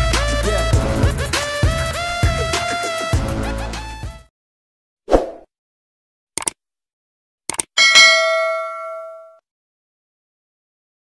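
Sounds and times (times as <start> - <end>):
quick clicks: 6.4 - 6.6, 7.5 - 7.7
bell ding: 7.8 - 9.4.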